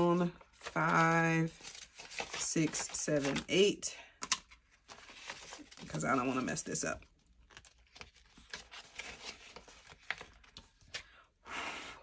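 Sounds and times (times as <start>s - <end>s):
paper banknotes rustling: 0.0s - 11.1s.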